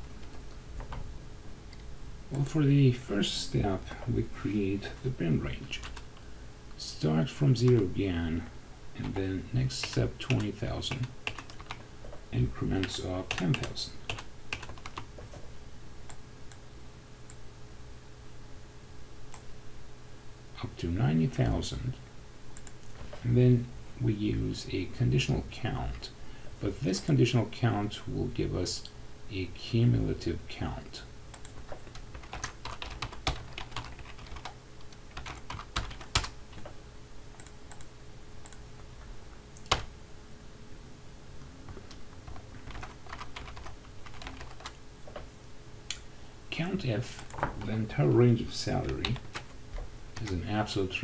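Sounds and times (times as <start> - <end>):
faint steady hum: 0.0 - 51.0
computer keyboard typing: 5.8 - 6.1, 9.0 - 11.8, 12.8 - 15.4, 31.3 - 36.8, 39.6 - 39.9, 41.7 - 45.2.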